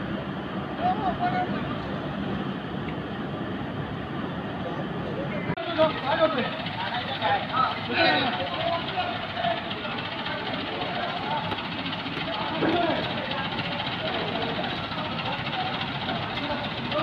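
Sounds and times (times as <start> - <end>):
diesel engine running: 0.0 - 17.0
people talking indistinctly: 4.8 - 17.0.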